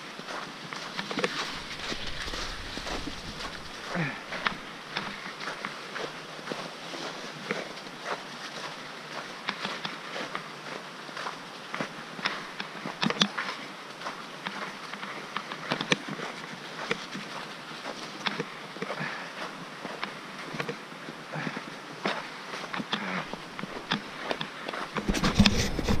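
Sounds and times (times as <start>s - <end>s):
tyres hissing on snow: 0.8s - 6.2s.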